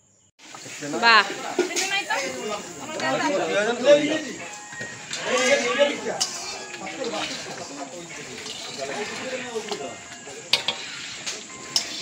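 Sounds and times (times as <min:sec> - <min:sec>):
overlapping voices chattering: 0:00.5 - 0:12.0.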